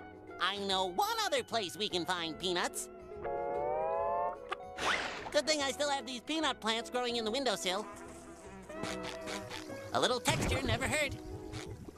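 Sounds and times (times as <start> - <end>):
soft background music: 0.0 - 11.9
cartoon flies buzzing: 8.0 - 9.9.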